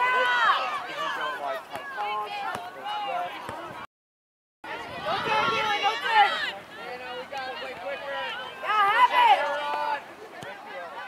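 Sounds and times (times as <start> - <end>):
voices shouting: 0.0 - 3.6, 4.7 - 11.0.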